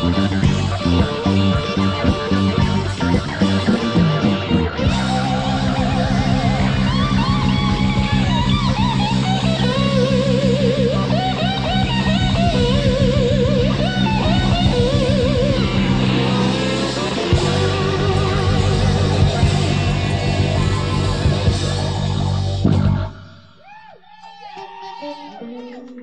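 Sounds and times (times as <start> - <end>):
steady drumbeat: 0.0 - 10.4, 11.1 - 23.3
held low chord: 0.0 - 23.4
electric guitar soloing: 0.0 - 26.0.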